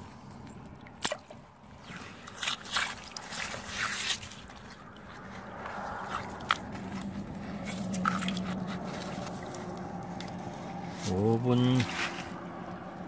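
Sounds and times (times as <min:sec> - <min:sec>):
hands digging in wet mud: 0:00.0 - 0:12.9.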